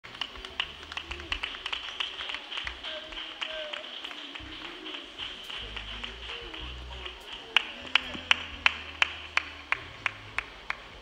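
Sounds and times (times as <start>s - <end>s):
faint murmur of voices: 0.0s - 11.0s
uneven hand clapping: 0.0s - 11.0s.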